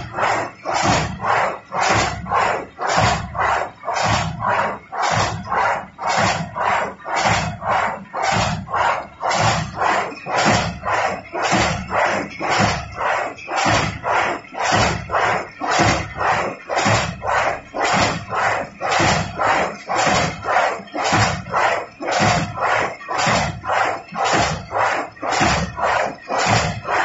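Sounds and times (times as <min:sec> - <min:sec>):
paper straw machine running: 0:00.0 - 0:27.0.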